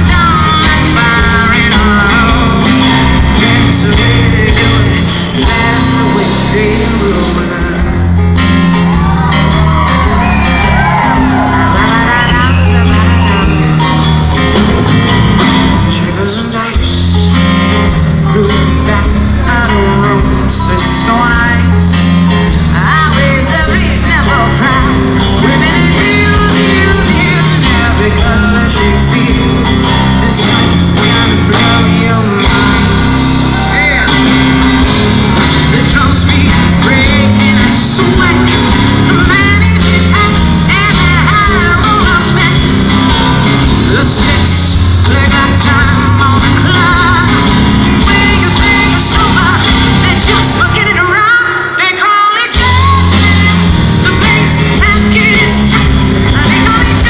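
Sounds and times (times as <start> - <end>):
bass guitar: 0.0 - 51.8, 52.5 - 57.0
drums: 0.0 - 57.0
electric guitar: 0.0 - 57.0
woman singing: 10.7 - 13.9, 18.3 - 33.0, 35.6 - 57.0.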